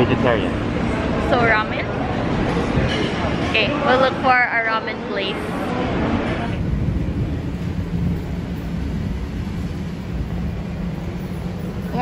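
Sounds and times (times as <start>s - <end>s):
low urban background rumble: 0.0s - 12.0s.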